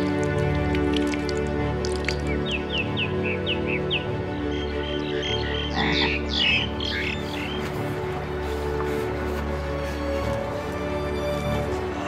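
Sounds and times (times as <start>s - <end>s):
low music drone: 0.0s - 12.0s
birds chirping: 2.0s - 9.6s.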